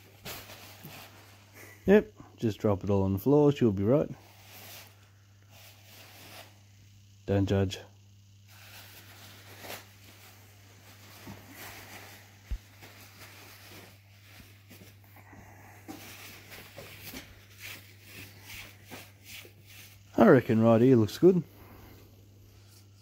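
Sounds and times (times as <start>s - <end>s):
paper towel rustling: 0.0s - 1.8s, 8.5s - 15.0s, 15.6s - 20.3s
steady low hum: 0.0s - 23.0s.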